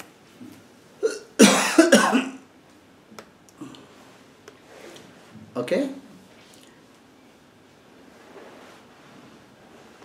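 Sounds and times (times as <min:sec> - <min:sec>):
man coughing: 0:01.0 - 0:02.4.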